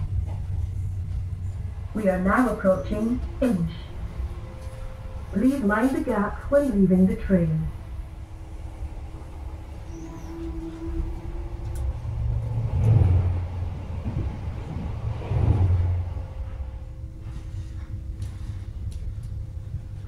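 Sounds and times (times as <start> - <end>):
passing train rush: 0.0 - 20.0
train running rumble: 0.0 - 20.0.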